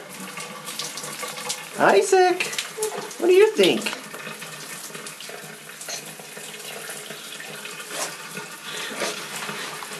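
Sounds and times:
shower water spraying: 0.0s - 9.9s.

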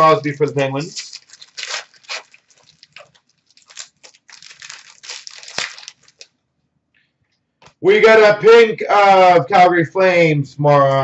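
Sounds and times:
foil wrapper crinkling and tearing: 0.0s - 6.3s.

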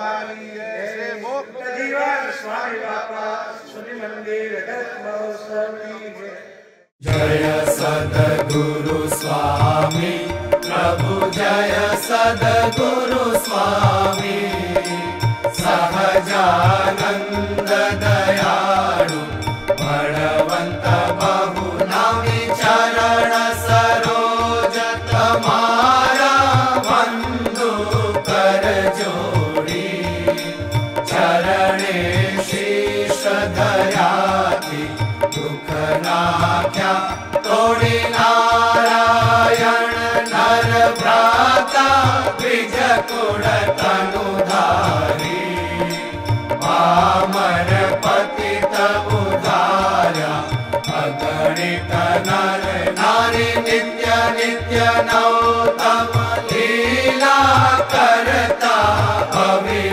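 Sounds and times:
voices singing a hymn: 0.0s - 6.0s, 7.0s - 59.9s.

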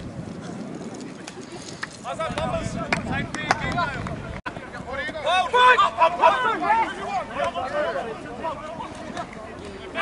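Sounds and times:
outdoor background noise: 0.0s - 10.0s
spectators talking and calling out: 4.1s - 10.0s.

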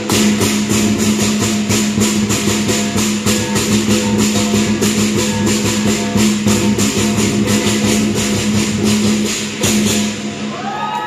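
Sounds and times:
big drum: 0.0s - 11.0s
clashing cymbals: 0.0s - 11.0s
gong: 0.0s - 11.0s.

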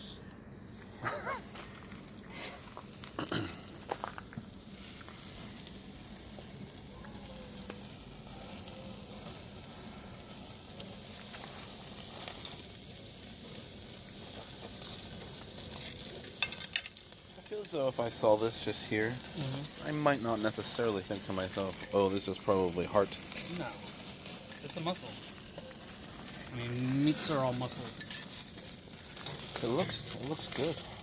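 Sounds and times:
meat sizzling on grill: 0.7s - 31.0s.

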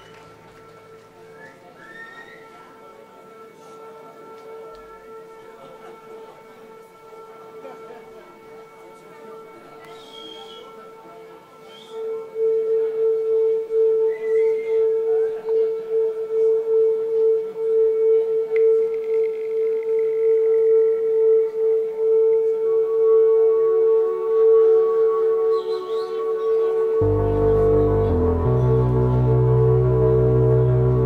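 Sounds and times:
held synthesizer note: 26.7s - 31.0s.

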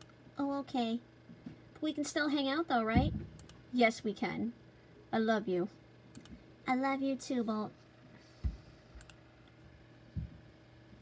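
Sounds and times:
computer mouse click: 3.4s - 3.6s, 6.1s - 6.4s, 9.0s - 9.2s.

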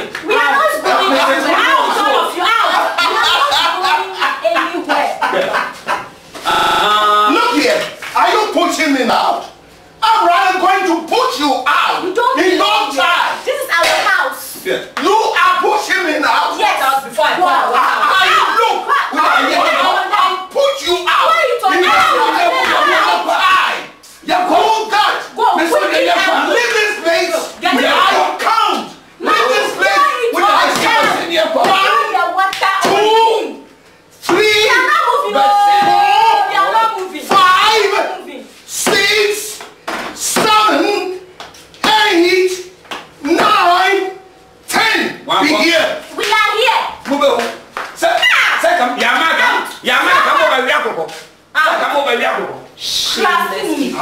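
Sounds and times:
people exclaiming loudly: 0.0s - 8.6s, 15.0s - 39.6s, 41.8s - 47.0s, 48.0s - 50.9s
voices talking over each other: 0.0s - 54.0s.

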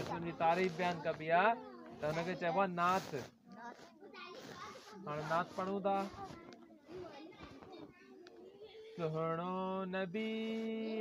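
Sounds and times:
person reciting: 0.0s - 3.3s, 4.4s - 6.6s, 8.6s - 11.0s
faint children's voices: 0.0s - 11.0s.

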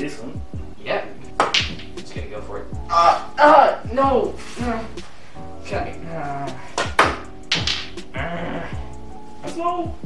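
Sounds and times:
background music with steady beat: 0.0s - 10.0s
pool balls clacking: 1.3s - 2.1s, 6.7s - 8.0s
cue tip clicking cue ball: 1.4s - 2.0s, 6.8s - 8.0s.

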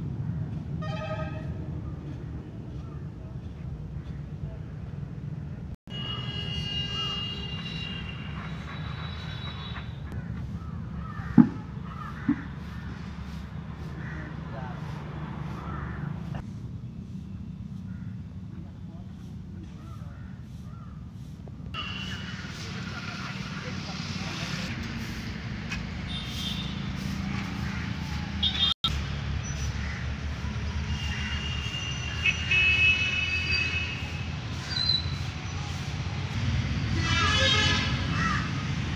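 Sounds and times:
traffic rumble: 0.0s - 38.9s
vehicle horn: 0.8s - 1.6s, 5.9s - 9.8s, 21.8s - 22.6s, 26.0s - 27.1s, 28.4s - 28.8s, 30.9s - 34.2s, 36.9s - 38.1s
bird cawing: 10.2s - 14.5s, 15.4s - 16.4s, 17.8s - 18.3s, 19.8s - 21.2s, 29.8s - 30.1s, 38.1s - 38.6s.

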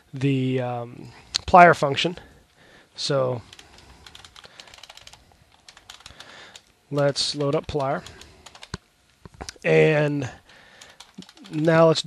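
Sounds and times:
computer keyboard typing: 3.4s - 8.8s, 10.4s - 12.0s.

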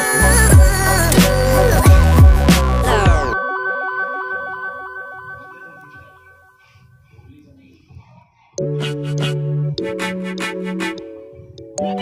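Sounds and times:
quiet electronic melody: 0.0s - 7.8s, 8.6s - 12.0s.

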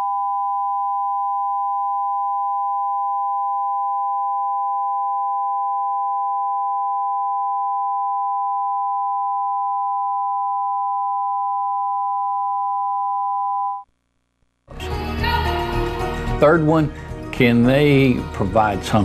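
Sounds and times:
steady two-tone test tone: 0.0s - 13.9s.

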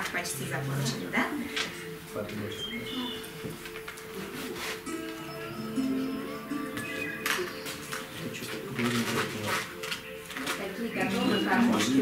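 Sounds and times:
background music with held notes: 0.0s - 12.0s
indistinct voices talking: 2.2s - 12.0s.

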